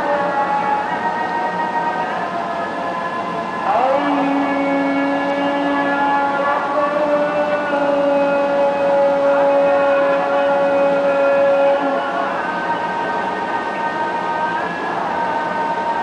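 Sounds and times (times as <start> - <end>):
call to prayer singing: 0.0 - 16.0.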